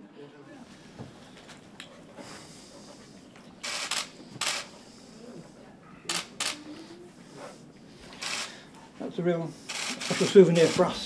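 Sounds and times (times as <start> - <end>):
camera shutter clicks: 3.6 - 4.7, 6.1 - 6.6, 8.2 - 8.6, 9.7 - 10.9.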